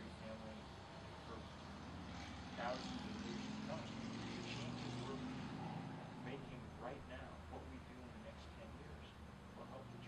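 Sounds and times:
man talking: 0.0 - 1.5, 2.6 - 10.0
vehicle engine drone: 0.0 - 10.0.

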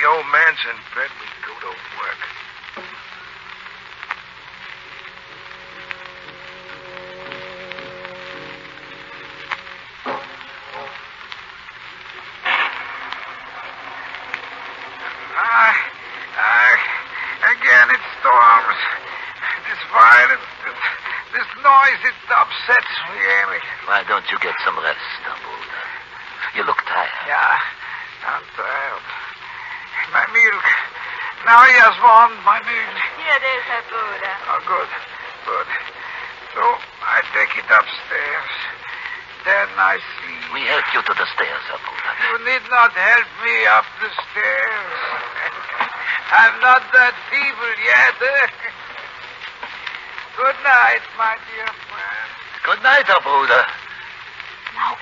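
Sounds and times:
actors' voices speaking: 0.0 - 55.0
recording surface hiss and crackle: 0.0 - 55.0
faint clicks: 48.5 - 50.4.

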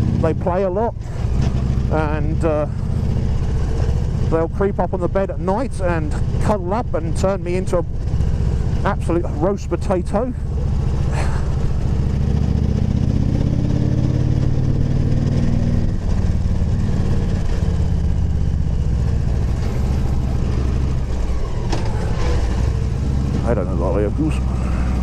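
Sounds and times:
motorcycle engine running: 0.0 - 25.0.

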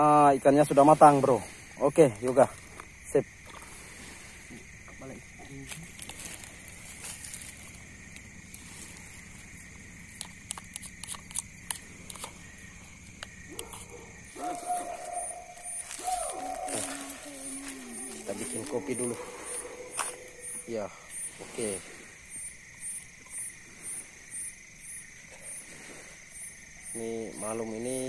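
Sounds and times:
crickets chirping: 0.0 - 28.0
night insects chorus: 0.0 - 28.0
low voices: 15.9 - 22.0.

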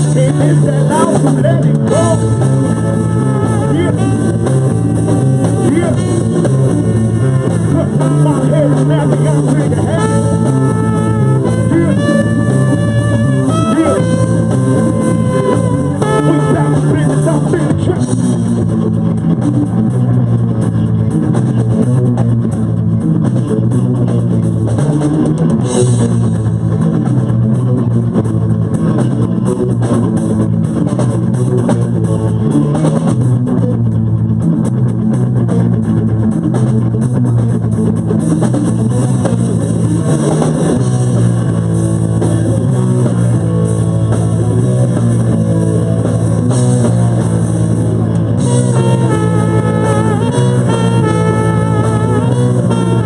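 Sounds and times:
bass guitar: 0.0 - 53.0
drum kit: 0.0 - 53.0
electric guitars: 0.0 - 53.0.

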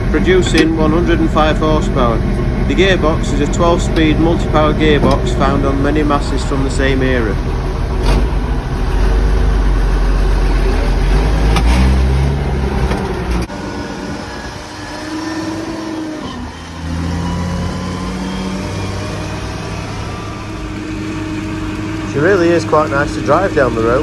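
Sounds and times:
tractor diesel engine running: 0.0 - 24.0.

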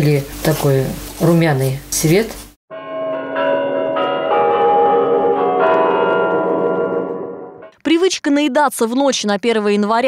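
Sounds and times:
bells ringing: 2.7 - 7.7.

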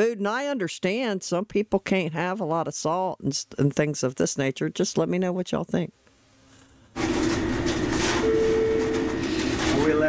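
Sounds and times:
held tone: 7.0 - 10.0.

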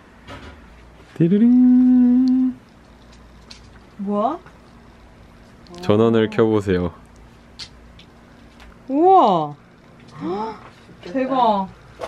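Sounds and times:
woman saying wow: 5.7 - 6.4.

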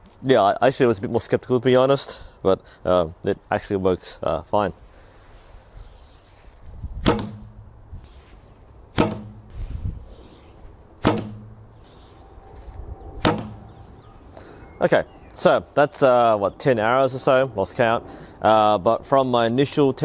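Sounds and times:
low hum of bow settling: 5.6 - 14.3.

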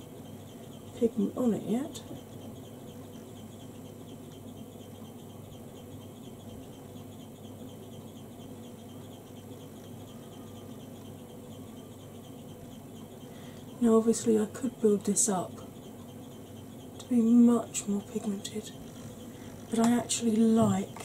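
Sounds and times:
low hum with faint hiss: 0.0 - 21.0.

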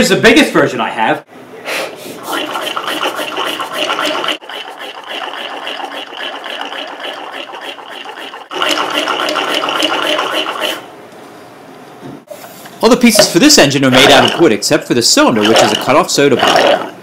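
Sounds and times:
breath pumping: 1.8 - 10.8.

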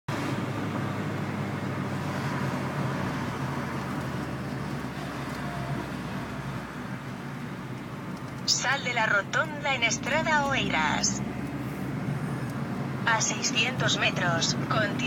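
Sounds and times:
car cabin road and engine rumble: 0.1 - 15.0.

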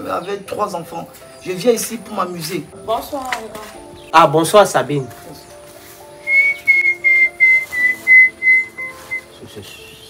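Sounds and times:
faint background music: 0.0 - 10.0
short high whistled notes: 6.2 - 9.3.

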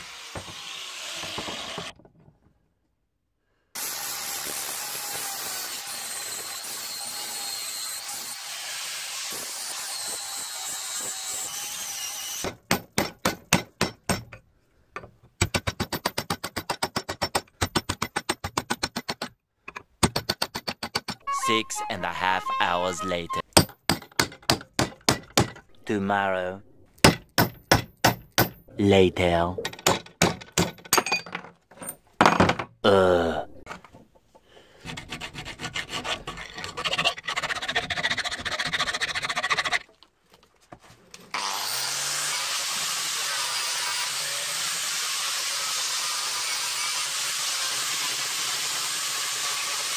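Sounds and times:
angle grinder grinding steel: 0.0 - 1.9, 3.8 - 12.4
comic voice saying uhhh: 21.3 - 23.4, 25.8 - 26.7, 32.8 - 33.6
sharp metallic knocks: 29.6 - 31.2
file rasping on steel: 34.8 - 40.0.

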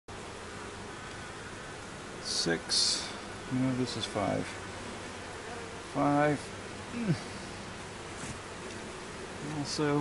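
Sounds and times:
bees buzzing: 0.1 - 10.0.

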